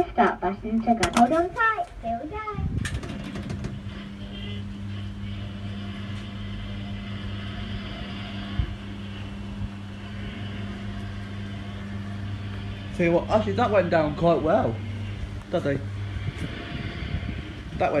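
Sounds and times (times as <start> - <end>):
electric motor humming: 3.2 - 18.0.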